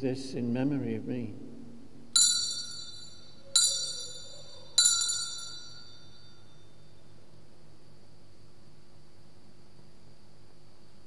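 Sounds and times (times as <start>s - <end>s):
altar bells ringing: 2.2s - 7.0s.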